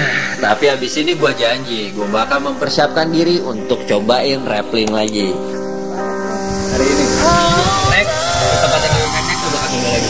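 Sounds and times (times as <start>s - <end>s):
background music with sustained chords: 0.0s - 10.0s.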